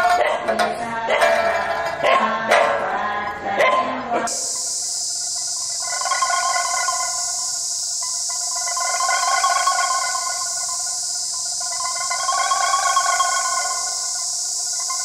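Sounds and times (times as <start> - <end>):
steady high hiss: 4.2 - 15.0
layered electronic held tones: 4.3 - 15.0.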